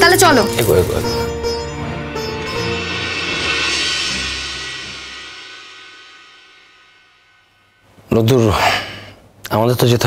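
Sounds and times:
cymbal shimmer: 0:00.6 - 0:07.9
low drone: 0:01.1 - 0:08.0.

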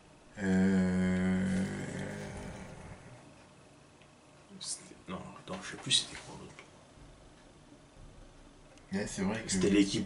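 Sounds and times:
man hesitating: 0:00.4 - 0:03.2.

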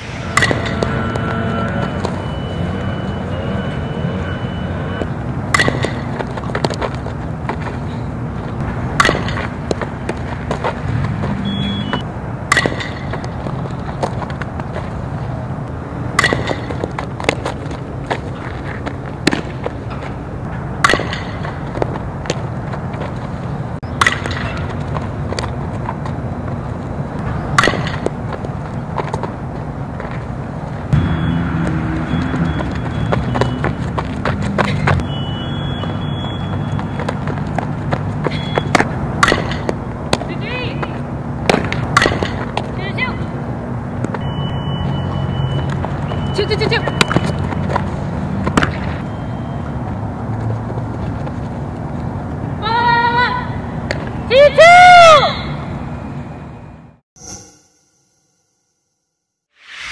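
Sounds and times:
ball being hit: 0:00.2 - 0:01.3, 0:05.5 - 0:06.8, 0:09.0 - 0:09.8, 0:12.5 - 0:13.4, 0:16.1 - 0:17.0, 0:20.8 - 0:21.6, 0:24.0 - 0:24.7, 0:27.5 - 0:28.2, 0:38.3 - 0:40.3, 0:41.4 - 0:42.6.

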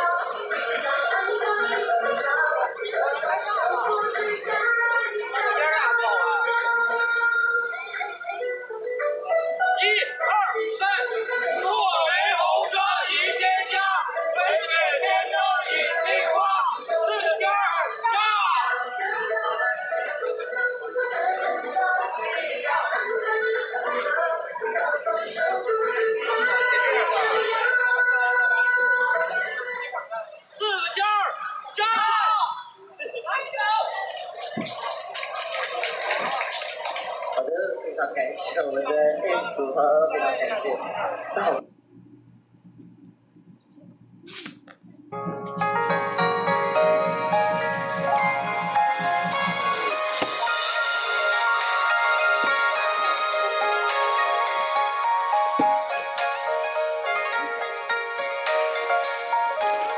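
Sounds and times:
instrumental pop music: 0:00.0 - 0:12.3, 0:45.1 - 0:59.9
audience clapping and cheering: 0:33.7 - 0:37.5.

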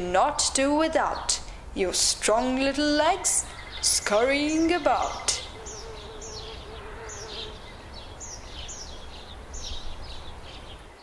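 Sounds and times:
small birds chirping: 0:00.9 - 0:11.0
wavering buzz: 0:03.4 - 0:07.9.

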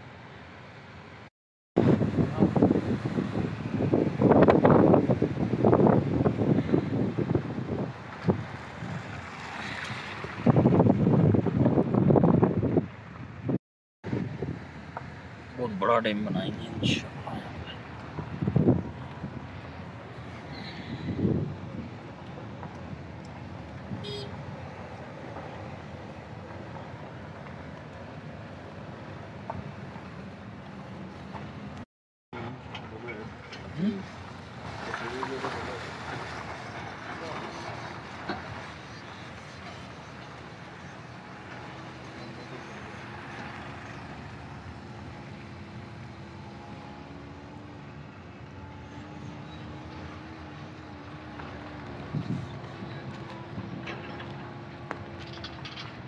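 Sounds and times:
vehicle driving on unpaved road: 0:00.0 - 0:56.0
constant rushing noise: 0:32.4 - 0:56.0.

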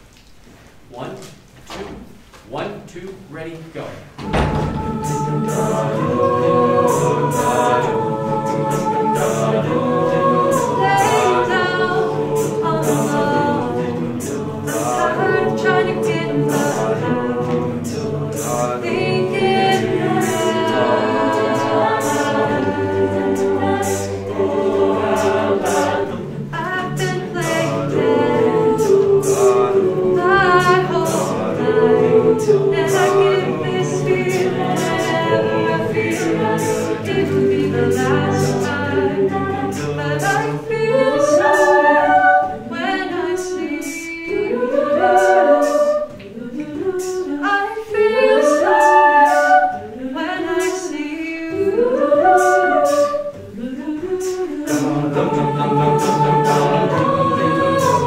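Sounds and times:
a cappella ensemble singing: 0:03.7 - 0:58.0.

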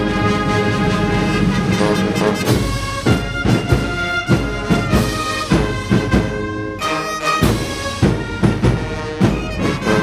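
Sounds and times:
brass band sustained chords: 0:00.0 - 0:10.0.

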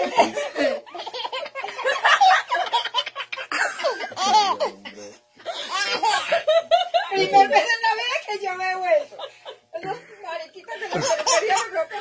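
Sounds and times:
woman laughing: 0:00.0 - 0:02.9, 0:05.4 - 0:07.7, 0:08.9 - 0:12.0
baby laughing: 0:00.0 - 0:04.8, 0:05.5 - 0:06.9, 0:10.9 - 0:11.8.

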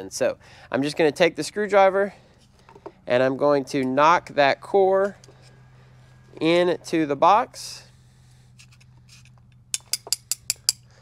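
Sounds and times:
screwdriver clinking on metal probe: 0:08.6 - 0:10.9.

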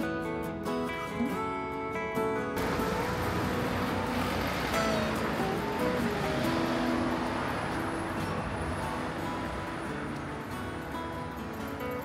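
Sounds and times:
road traffic rush: 0:02.5 - 0:12.0.

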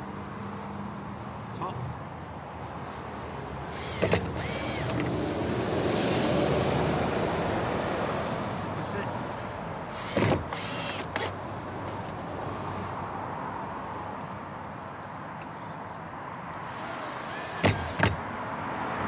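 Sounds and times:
cordless drill bursts: 0:03.6 - 0:05.2, 0:09.8 - 0:11.4, 0:16.6 - 0:18.3.

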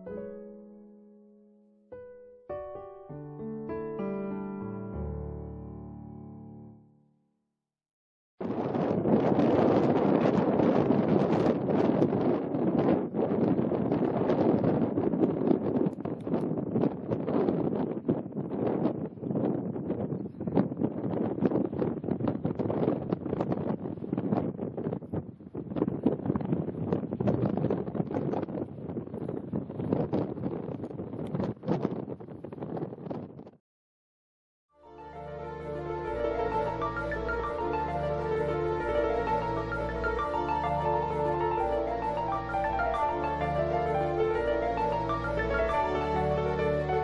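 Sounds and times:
wind buffeting microphone: 0:08.4 - 0:33.6.

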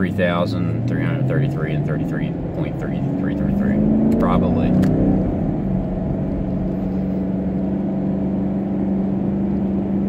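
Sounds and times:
car cabin rumble and hum: 0:00.0 - 0:10.0.

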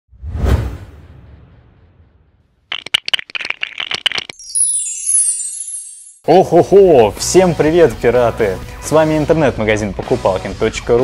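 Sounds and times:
whoosh ending in low thump: 0:00.2 - 0:02.4.

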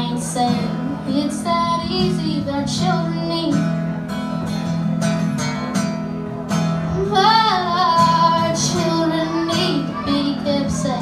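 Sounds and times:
girl singing: 0:00.0 - 0:03.8, 0:07.0 - 0:11.0
strummed acoustic guitar: 0:00.0 - 0:11.0.

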